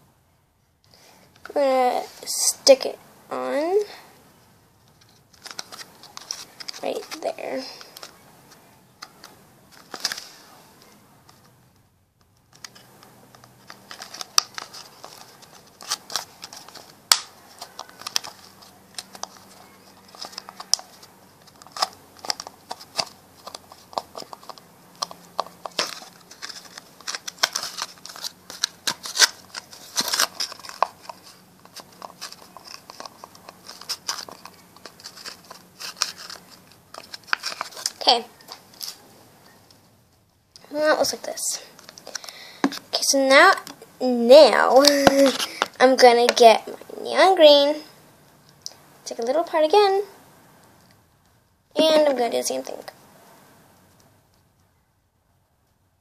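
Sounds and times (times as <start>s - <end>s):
plastic bottle crinkling: 5.0s - 8.2s, 12.5s - 39.0s, 44.8s - 45.8s.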